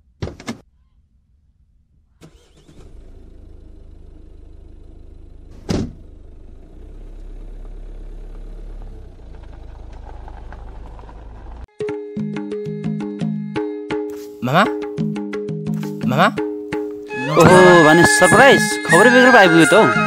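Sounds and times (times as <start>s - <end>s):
car engine starting and running: 2.1s - 11.7s
car door shutting: 5.5s - 6.2s.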